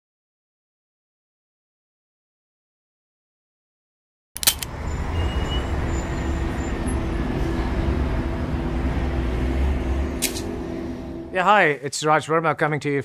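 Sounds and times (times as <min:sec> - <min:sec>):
low rumble with hum: 0:04.7 - 0:11.4.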